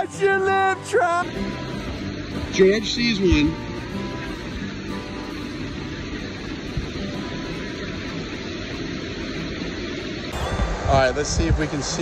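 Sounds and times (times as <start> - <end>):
music track: 0.0 - 8.5, 10.3 - 12.0
creek rushing over rocks: 0.0 - 12.0.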